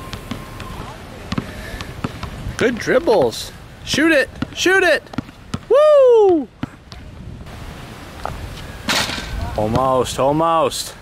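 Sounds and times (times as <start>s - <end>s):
basketball bouncing: 0.0s - 3.4s, 4.3s - 5.7s, 6.3s - 7.1s.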